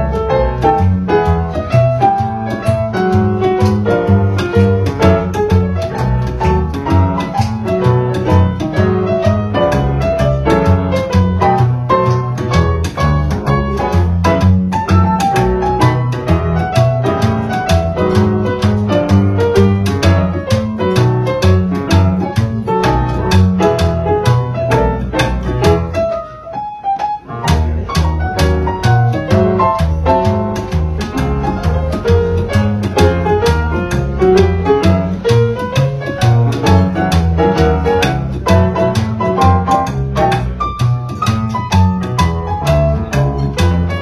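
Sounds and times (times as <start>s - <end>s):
jazz piano: 0.0s - 44.0s
upright double bass: 0.0s - 44.0s.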